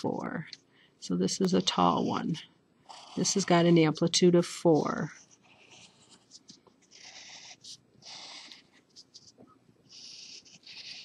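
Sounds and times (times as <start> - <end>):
pencil scratching on paper: 1.4 - 11.0.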